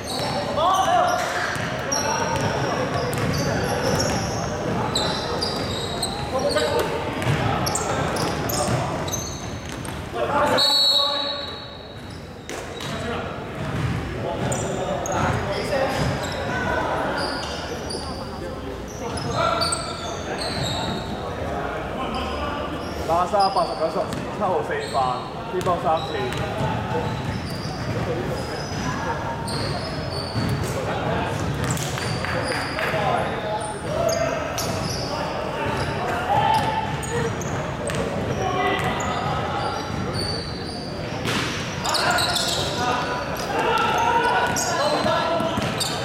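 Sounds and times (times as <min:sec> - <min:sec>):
players' voices: 0:00.0 - 0:46.0
sneakers squeaking: 0:00.0 - 0:46.0.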